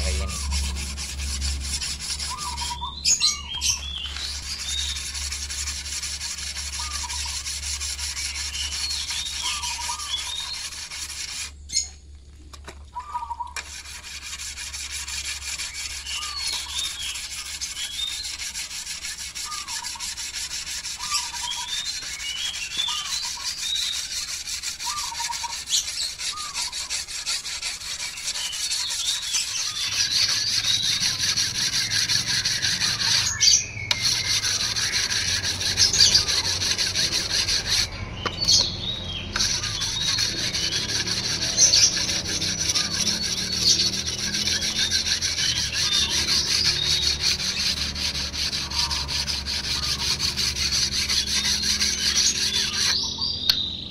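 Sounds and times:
whetstone scraping steel blade: 0.0s - 11.6s, 13.4s - 53.6s.

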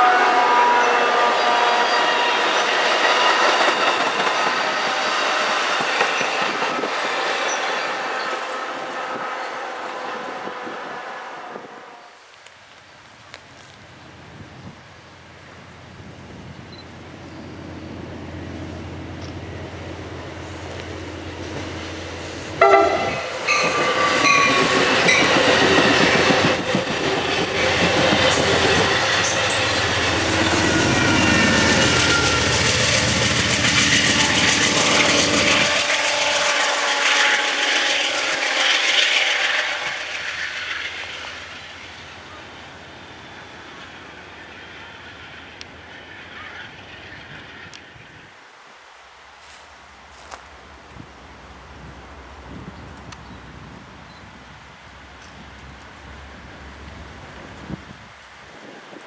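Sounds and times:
train air horn blasts: 0.0s - 3.8s, 8.0s - 12.2s, 22.5s - 40.6s
train wheels rolling on rails: 0.0s - 59.0s
diesel locomotive engine rumble: 13.0s - 48.4s.

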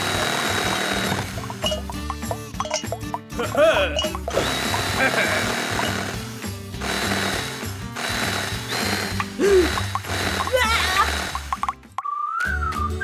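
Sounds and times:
cordless power drill running: 0.0s - 1.6s, 4.3s - 11.6s.

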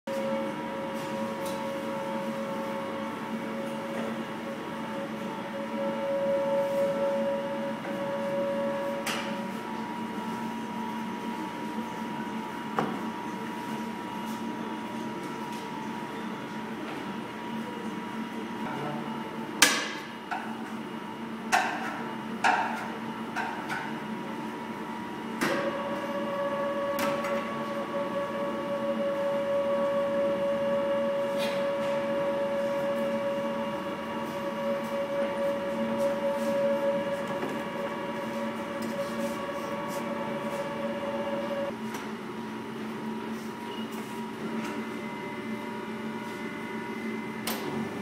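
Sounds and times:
constant machine hum: 0.1s - 48.0s.

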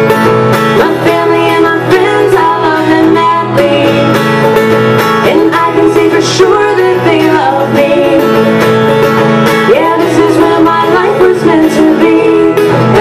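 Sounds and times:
acoustic guitar strumming: 0.0s - 13.0s
woman singing: 0.7s - 4.5s, 5.2s - 8.7s, 9.6s - 13.0s.

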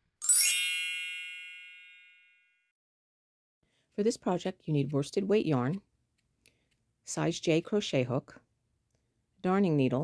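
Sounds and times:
bright ringing tones: 0.2s - 2.6s
bell-like chime shimmer: 0.2s - 2.7s.

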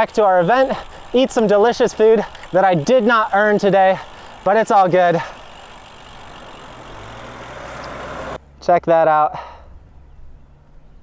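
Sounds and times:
bike tyres on paved road: 0.0s - 8.6s.

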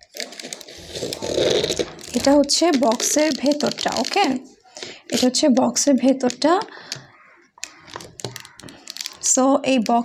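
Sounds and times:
glass vials rattling: 0.2s - 10.0s.

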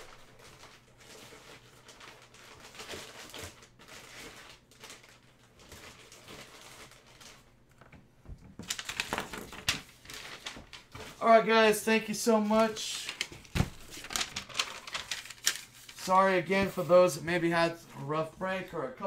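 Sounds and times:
cards and plastic packaging rustling: 0.0s - 18.9s.

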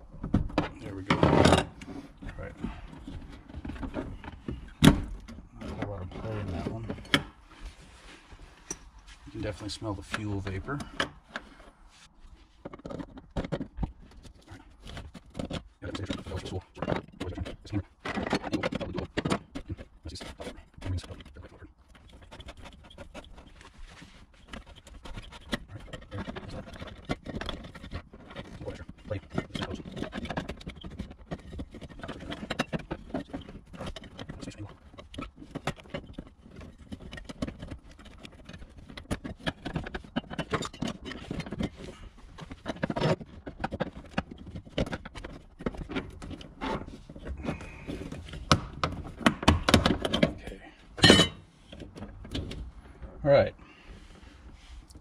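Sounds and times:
plastic lock ring clicking and scraping: 12.6s - 52.7s.

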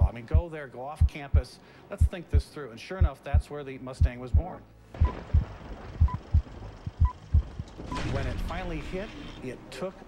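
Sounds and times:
heavy low double thump: 4.0s - 7.7s.

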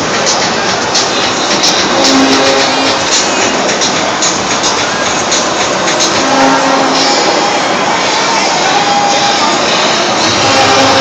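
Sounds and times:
crowd noise: 0.0s - 11.0s
trucks moving: 0.0s - 11.0s.

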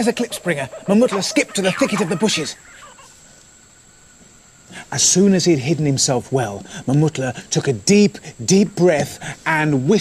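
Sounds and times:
man narrating: 0.0s - 2.6s, 4.8s - 10.0s
faint background hiss: 0.0s - 10.0s.

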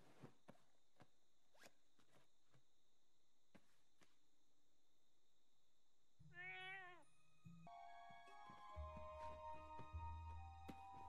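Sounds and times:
bedclothes rustling: 0.0s - 4.7s.

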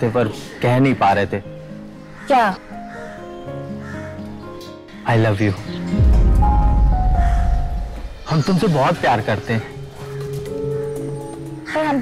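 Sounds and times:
deep low boom: 6.0s - 8.4s.

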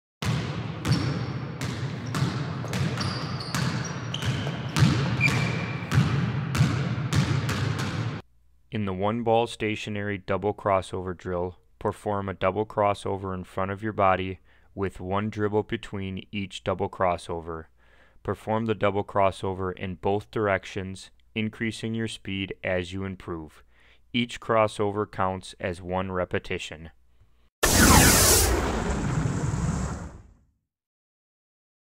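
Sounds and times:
basketball bouncing on gym floor: 0.2s - 8.2s
high shoe squeaks: 2.0s - 5.9s
burst of noise with deep rumble: 27.6s - 30.4s
falling tone: 27.6s - 30.4s.

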